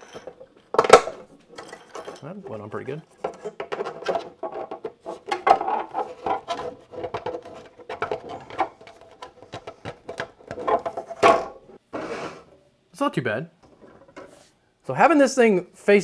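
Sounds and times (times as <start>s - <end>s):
plastic parts clattering on wood: 0.0s - 11.6s.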